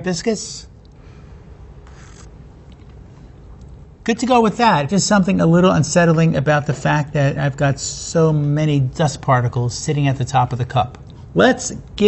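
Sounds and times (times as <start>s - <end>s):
sip of hot tea: 1.8s - 2.3s.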